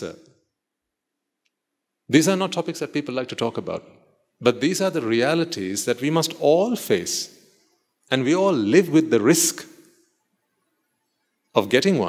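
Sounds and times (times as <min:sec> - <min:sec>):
man speaking: 0:00.0 - 0:00.2, 0:02.1 - 0:07.4, 0:08.1 - 0:09.8, 0:11.6 - 0:12.0.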